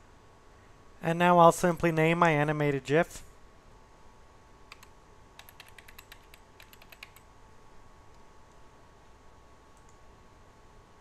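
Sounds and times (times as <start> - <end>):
faint steady hum: 0.0 - 11.0
faint keyboard typing: 4.7 - 7.3, 9.7 - 10.1.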